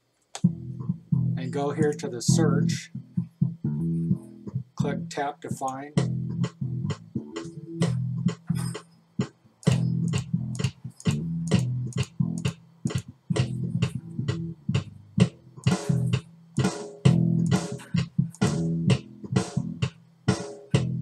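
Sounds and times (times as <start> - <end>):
bass guitar riff: 0.4 - 21.0.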